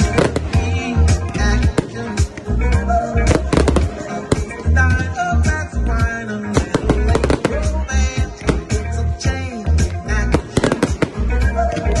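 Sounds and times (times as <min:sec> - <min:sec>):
fireworks bursting and crackling: 0:00.0 - 0:02.4, 0:03.3 - 0:04.7, 0:06.5 - 0:07.8, 0:10.3 - 0:11.3
music with heavy bass: 0:00.0 - 0:12.0.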